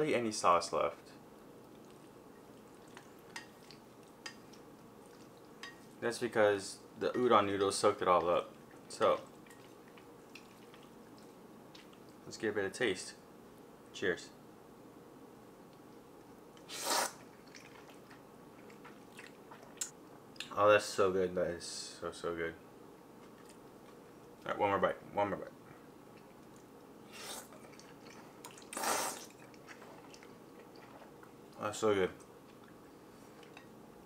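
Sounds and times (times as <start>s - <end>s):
quiet chewing with small clicks: 1.1s - 6.0s, 7.1s - 12.3s, 15.6s - 20.6s, 23.1s - 24.6s, 25.7s - 34.0s
person slurping noodles: 16.7s - 17.2s, 27.1s - 27.8s, 28.6s - 30.2s.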